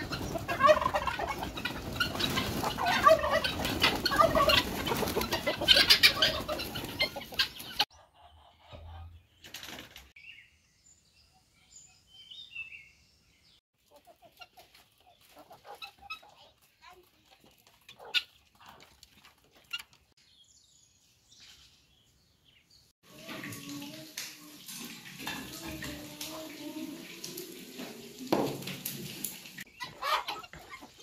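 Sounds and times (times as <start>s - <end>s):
wings flapping: 0.0s - 7.8s, 9.4s - 10.1s
chickens clucking: 0.0s - 9.8s, 13.8s - 20.1s, 29.6s - 31.0s.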